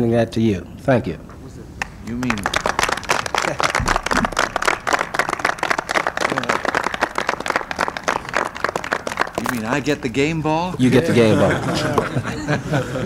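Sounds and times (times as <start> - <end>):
crowd applauding: 1.8 - 10.2
person speaking: 9.4 - 12.5.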